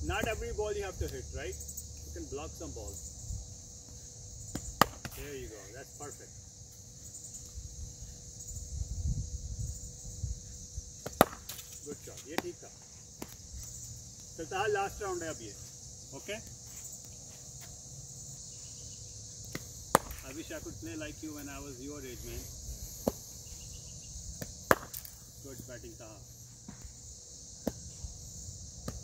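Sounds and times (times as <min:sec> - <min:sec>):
insects chirring: 0:00.0 - 0:29.0
cricket bat knocking ball: 0:04.5 - 0:05.2, 0:11.0 - 0:11.6, 0:19.5 - 0:20.3, 0:24.4 - 0:25.1.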